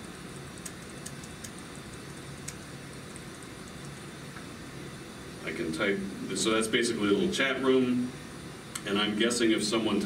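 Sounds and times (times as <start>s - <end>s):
ventilation hum: 0.0s - 10.0s
laptop keys clicking: 0.4s - 2.6s.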